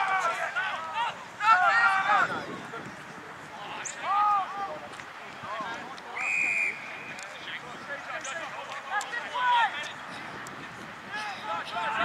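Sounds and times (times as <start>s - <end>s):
high-pitched whistle blast: 6.2s - 6.9s.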